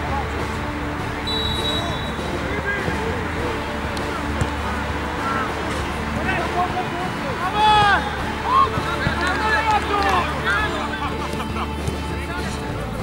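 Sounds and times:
players shouting: 0:00.0 - 0:12.8.

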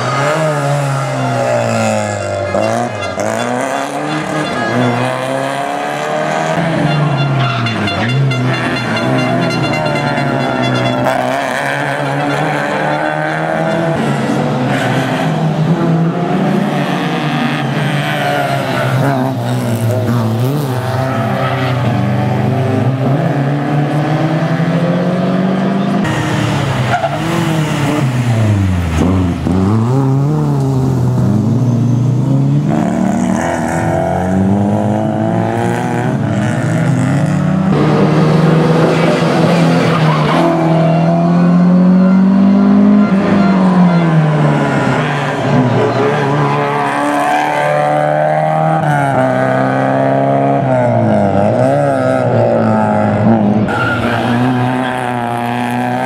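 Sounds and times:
rally car engines revving: 0:00.0 - 0:56.0.

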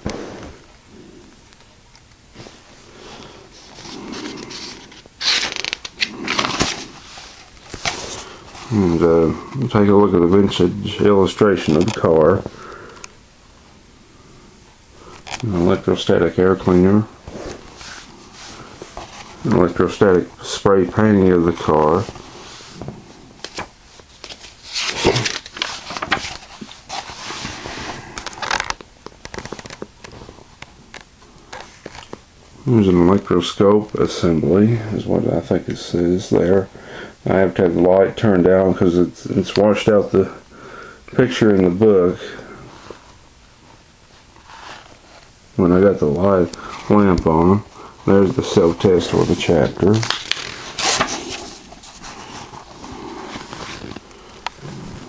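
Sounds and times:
paper rustling: 0:03.5 - 0:08.8, 0:17.2 - 0:30.4, 0:31.5 - 0:32.2, 0:48.1 - 0:55.0.

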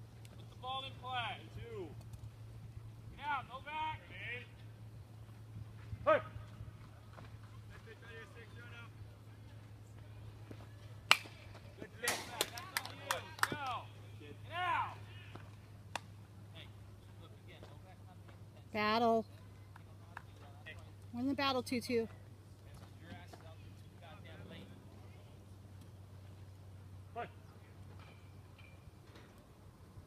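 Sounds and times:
steady low hum: 0:00.0 - 0:30.0
baseball players shouting: 0:03.1 - 0:04.6, 0:05.9 - 0:06.6, 0:11.8 - 0:15.7, 0:27.1 - 0:27.4
sharp crack: 0:11.1 - 0:13.7.

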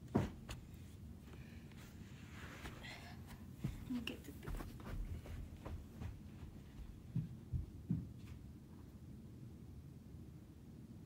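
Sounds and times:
low steady background hum: 0:00.0 - 0:11.0
faint thumps and knocks: 0:03.3 - 0:08.4.

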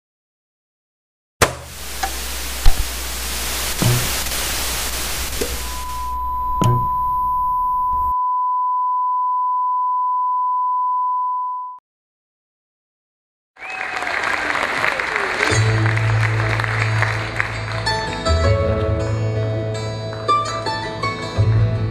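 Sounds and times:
thumps: 0:01.4 - 0:08.1
television static hissing: 0:01.6 - 0:07.6.

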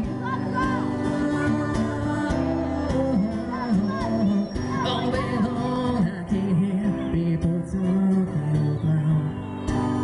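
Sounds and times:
acoustic guitar strumming: 0:00.0 - 0:10.0
man singing: 0:00.0 - 0:10.0.

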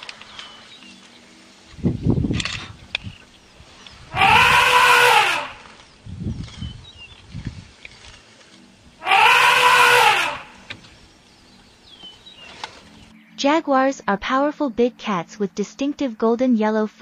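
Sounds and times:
elephant trumpeting: 0:04.1 - 0:05.8, 0:09.0 - 0:10.7.

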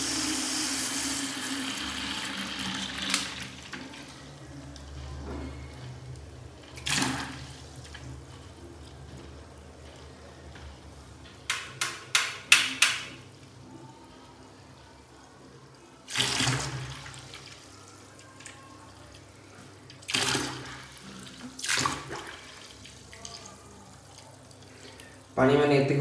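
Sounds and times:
tap water running into bucket: 0:00.0 - 0:04.4, 0:16.0 - 0:18.6, 0:19.6 - 0:25.1.

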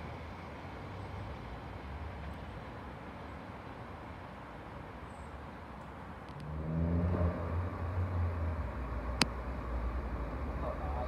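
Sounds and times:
diesel train engine rumble: 0:07.6 - 0:11.0.

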